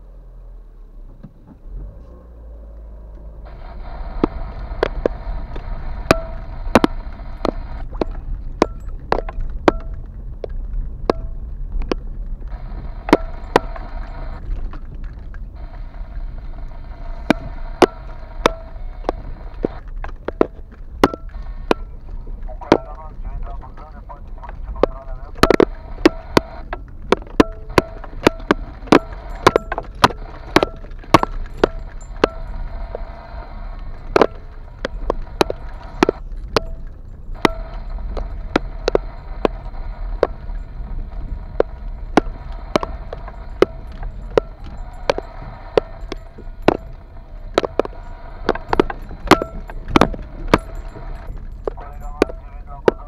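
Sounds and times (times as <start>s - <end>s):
low road and engine rumble: 0.0s - 53.0s
car body knocking and rattling: 3.4s - 53.0s.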